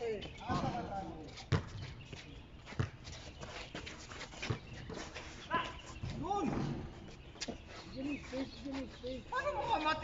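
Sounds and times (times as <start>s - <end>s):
basketball bouncing on concrete: 1.5s - 1.8s, 2.7s - 3.1s.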